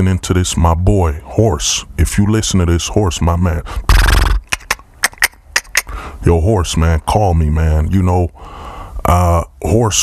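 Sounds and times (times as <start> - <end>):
horse-like snort: 3.8 - 4.5.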